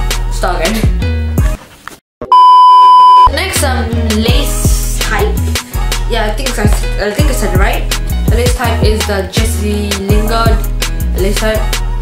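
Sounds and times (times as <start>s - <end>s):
steady test-tone beep: 2.3s - 3.3s
background music with a beat: 3.3s - 12.0s.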